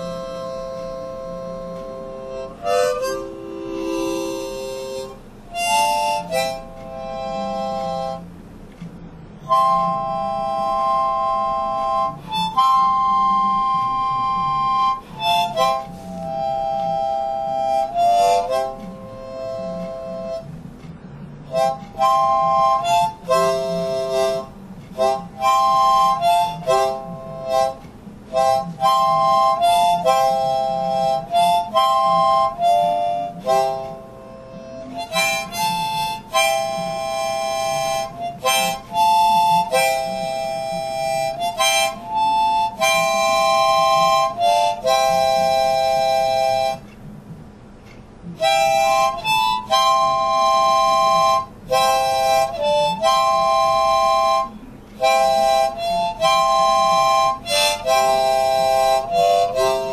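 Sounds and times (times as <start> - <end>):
harmonica chords: 0.0 - 59.9.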